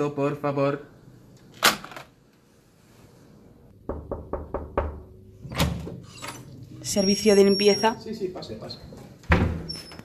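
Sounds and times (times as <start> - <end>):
knuckles knocking on door: 3.9 - 5.1
heavy thump on door: 9.3 - 9.7.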